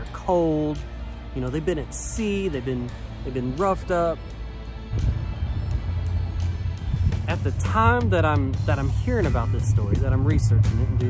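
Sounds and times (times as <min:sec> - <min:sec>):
music with loud bass rumble: 0:00.0 - 0:11.0.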